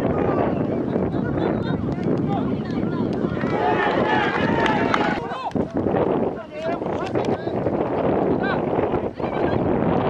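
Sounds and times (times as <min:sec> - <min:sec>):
people shouting: 0:03.3 - 0:05.5.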